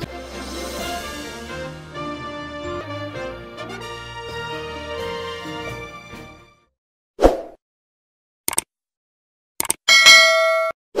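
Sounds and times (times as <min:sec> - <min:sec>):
short clicks: 0:08.5 - 0:08.7, 0:09.6 - 0:09.8
bell-like ding: 0:09.9 - 0:10.8.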